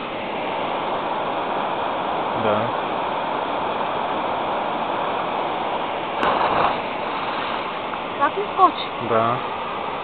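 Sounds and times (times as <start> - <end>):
river water rushing: 0.0 - 10.0.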